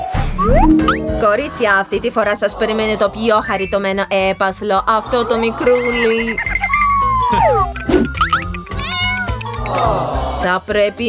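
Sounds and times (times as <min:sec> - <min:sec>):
background music: 0:00.0 - 0:04.2, 0:04.8 - 0:11.0
kitten meowing: 0:08.7 - 0:09.4.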